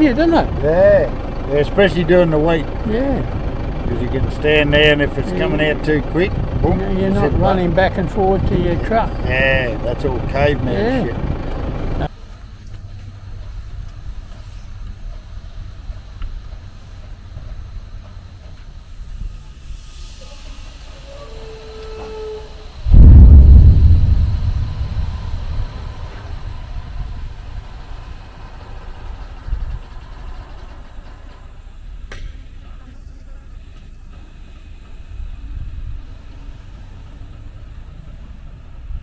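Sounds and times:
truck engine rumbling: 0:00.0 - 0:39.0.

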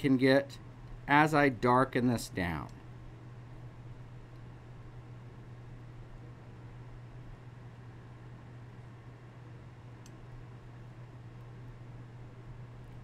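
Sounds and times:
steady low hum: 0:00.0 - 0:13.0
faint tick: 0:10.0 - 0:10.2.

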